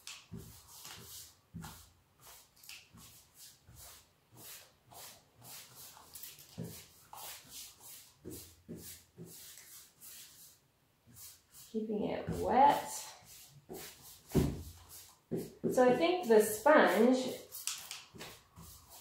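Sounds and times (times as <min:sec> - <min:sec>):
paintbrush swishing on wood: 0:00.0 - 0:19.0.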